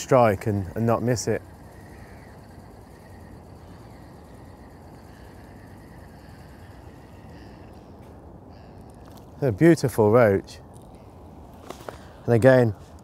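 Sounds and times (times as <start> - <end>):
faint wavering high tones: 0.0 - 9.4
steady low rumble: 0.0 - 13.0.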